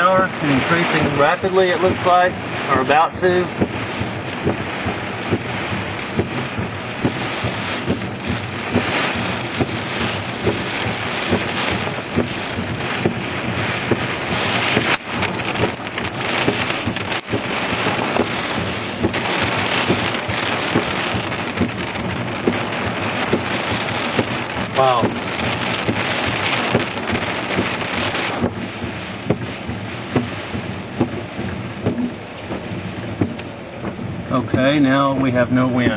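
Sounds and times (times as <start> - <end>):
heavy rain rushing: 0.0 - 35.9
raindrops hitting close: 0.0 - 35.9.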